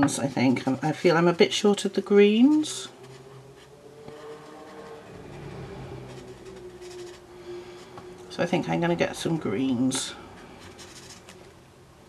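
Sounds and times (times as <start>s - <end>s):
steady low hum: 0.0s - 12.0s
marker scratching on paper: 2.5s - 8.0s, 10.4s - 11.5s.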